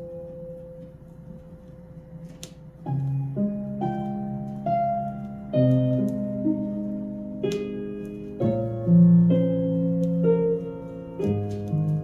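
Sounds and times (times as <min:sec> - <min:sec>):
soft piano piece: 0:00.0 - 0:12.0.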